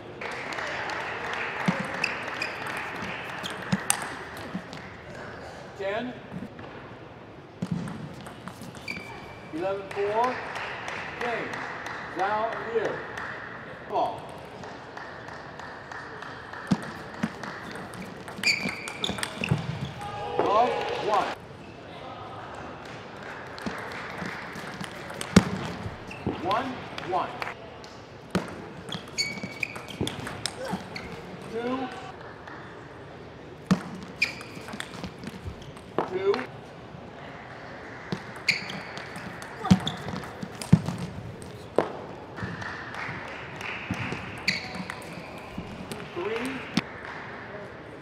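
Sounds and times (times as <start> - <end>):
table tennis ball clicking: 16.7 - 19.6, 28.4 - 31.6.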